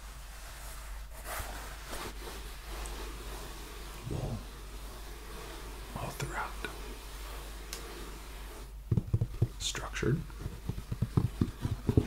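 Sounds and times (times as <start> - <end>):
hands rubbing felt hat: 0.0 - 12.0.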